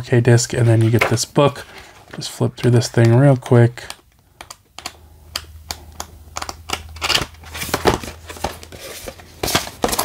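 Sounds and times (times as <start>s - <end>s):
pages being flipped: 0.8s - 1.3s, 6.4s - 10.0s.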